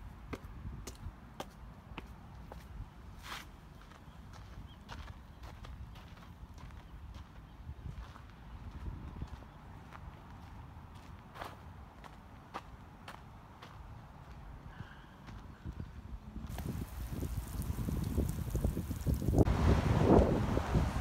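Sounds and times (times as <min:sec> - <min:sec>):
footsteps on garden path: 0:00.3 - 0:14.4, 0:16.5 - 0:19.5.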